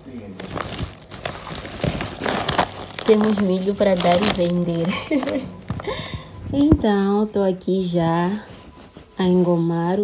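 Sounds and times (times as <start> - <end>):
plastic sack rustling and crinkling: 0.1 - 7.0.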